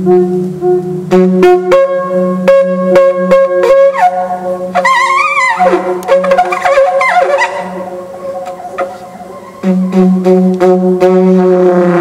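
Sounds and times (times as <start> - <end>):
conch shell trumpet: 0.0 - 12.0.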